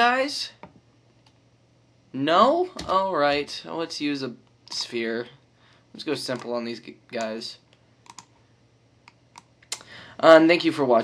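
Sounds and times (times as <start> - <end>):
mouse and keyboard clicks: 8.0 - 8.3.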